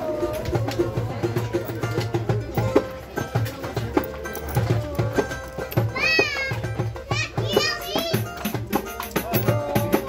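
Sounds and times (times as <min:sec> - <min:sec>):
hand drum beat: 0:00.0 - 0:10.0.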